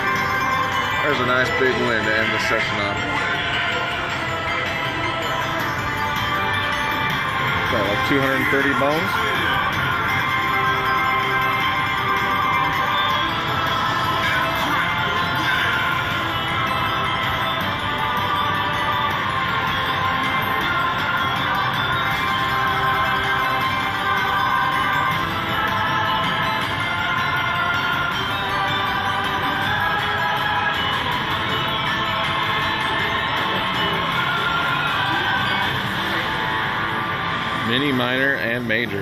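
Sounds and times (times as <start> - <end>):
slot machine win music: 0.0 - 39.0.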